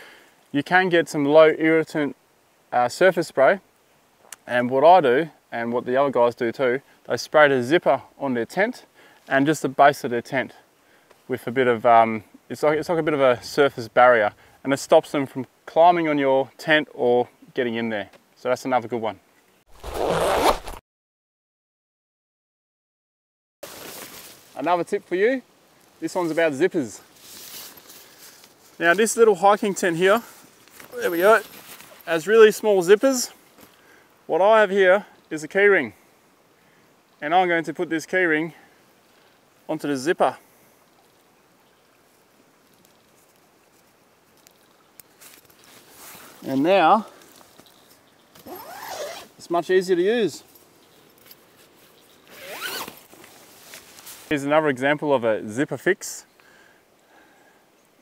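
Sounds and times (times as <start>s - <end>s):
zipper being pulled: 19.7s - 20.8s, 48.4s - 49.3s, 52.3s - 53.1s.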